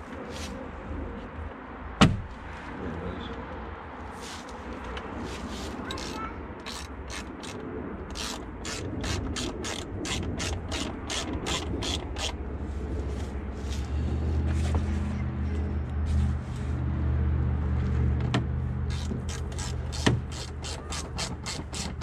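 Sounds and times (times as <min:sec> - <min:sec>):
hand ratchet clicking: 0:06.0 - 0:12.4, 0:18.9 - 0:22.0.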